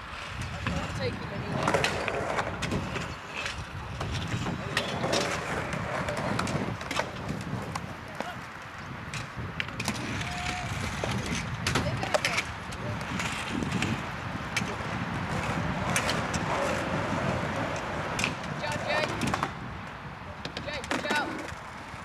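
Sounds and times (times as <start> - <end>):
scooter wheels rolling on tarmac: 0.0 - 22.0.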